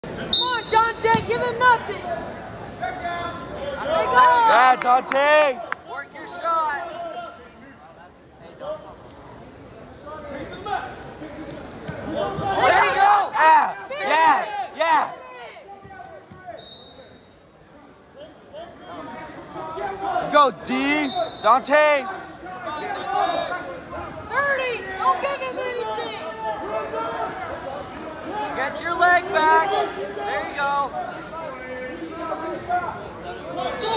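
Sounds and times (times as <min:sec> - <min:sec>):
spectators chattering: 0:00.0 - 0:33.9.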